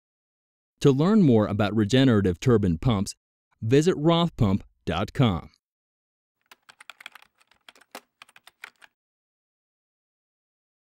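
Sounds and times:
marker writing clicks and taps: 6.4 - 8.9.

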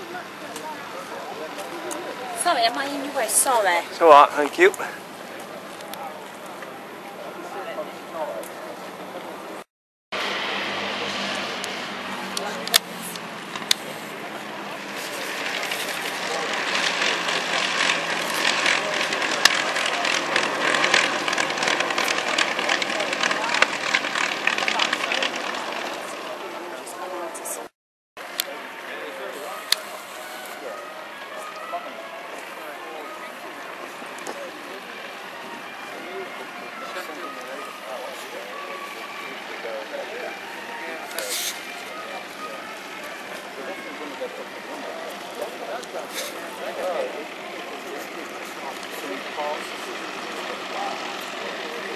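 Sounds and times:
people's voices: 0.0 - 9.7, 10.3 - 51.9
propeller aircraft engines running: 0.0 - 51.9.

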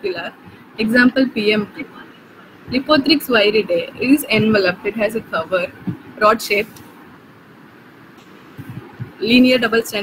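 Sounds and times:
microphone background hiss: 0.0 - 10.0.

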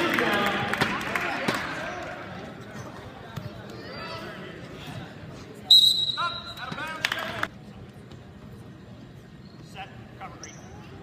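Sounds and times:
referee's whistle: 5.7 - 6.6.

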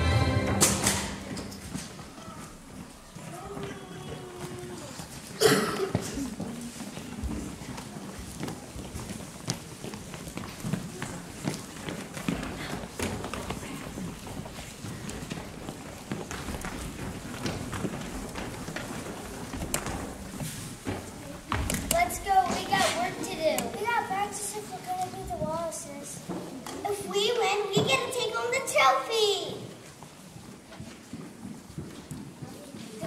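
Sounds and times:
murmur of voices: 0.0 - 16.2, 16.8 - 30.8
footsteps on wooden floor: 1.2 - 27.0
children's voices: 1.9 - 8.5, 20.9 - 29.8.

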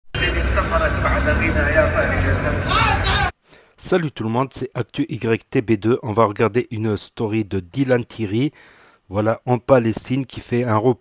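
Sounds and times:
van engine rumbling past: 0.2 - 3.3
people talking: 0.2 - 8.5, 9.1 - 11.0.

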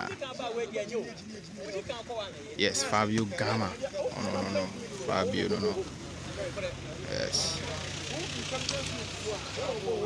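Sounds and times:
voices talking and calling: 0.0 - 10.0.

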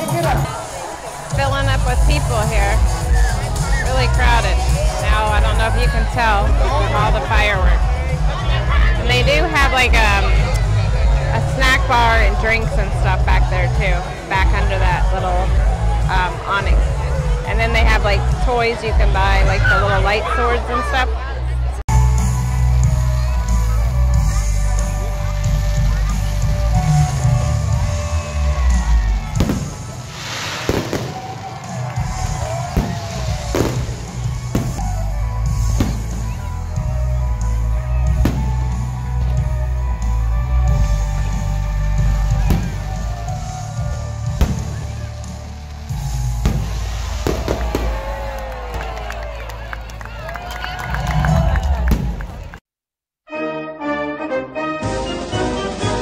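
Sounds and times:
music with heavy bass: 1.2 - 20.6, 21.9 - 29.8, 32.0 - 48.0
fireworks bangs and pops: 29.2 - 36.4, 44.3 - 48.6.

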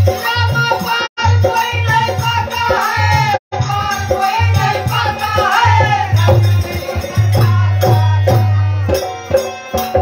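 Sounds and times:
hand drum rhythm: 0.0 - 10.0
harmonium melody: 0.0 - 10.0
jingling metal percussion: 0.0 - 10.0.

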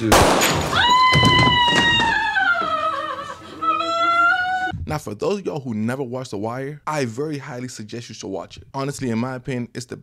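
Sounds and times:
pistol shot: 0.0 - 0.8
woman screaming: 0.7 - 4.7.

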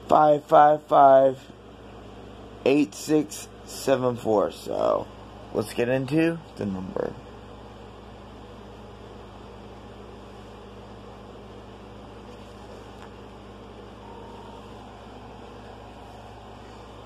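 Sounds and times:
steady low hum: 0.0 - 17.0
faint short tone: 13.9 - 17.0.

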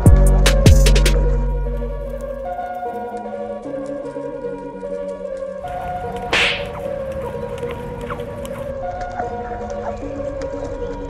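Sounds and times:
background music: 0.0 - 11.0
sharp whoosh: 5.7 - 8.6.

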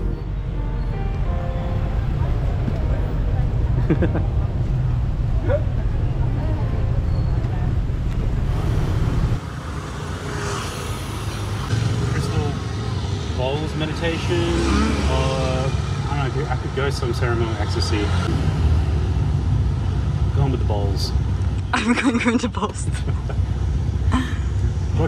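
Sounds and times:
road traffic rumble: 0.0 - 25.0
people talking in background: 2.1 - 8.2.

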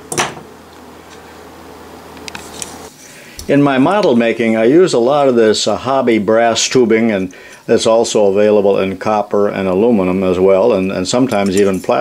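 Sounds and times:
low room hum: 0.0 - 12.0
pliers clunk on bench: 0.1 - 0.5.

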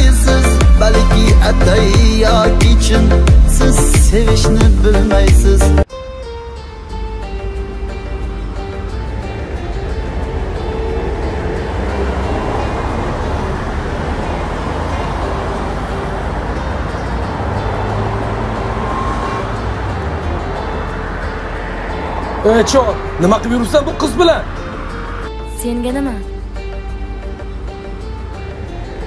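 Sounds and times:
slow music with held notes: 0.0 - 29.0.

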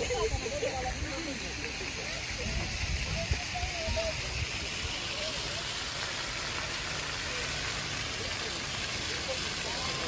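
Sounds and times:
constant hiss: 0.0 - 10.0
faint voices of people: 0.0 - 10.0.

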